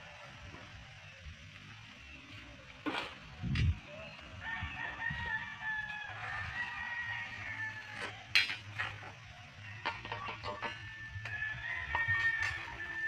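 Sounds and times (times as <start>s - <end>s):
rooster crowing: 4.3s - 13.0s.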